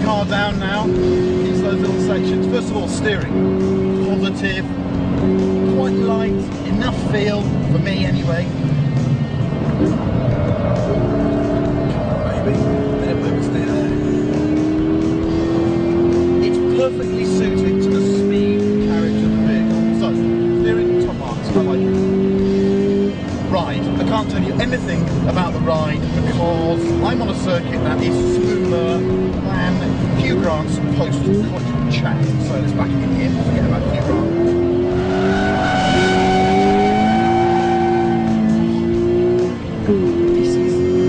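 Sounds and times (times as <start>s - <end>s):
car engine accelerating hard: 0.0s - 41.0s.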